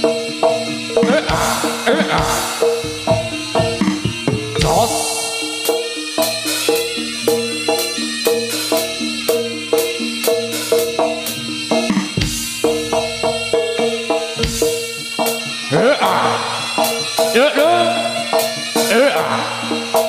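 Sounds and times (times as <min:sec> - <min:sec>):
drum strokes: 0:00.0 - 0:20.0
pitched gamelan notes: 0:00.0 - 0:20.0.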